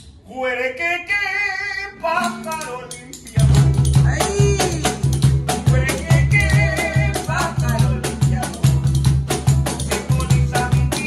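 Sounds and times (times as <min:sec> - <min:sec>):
man singing: 0:00.2 - 0:09.0, 0:09.6 - 0:11.0
cajon beat: 0:01.9 - 0:11.0
strummed guitar: 0:01.9 - 0:11.0.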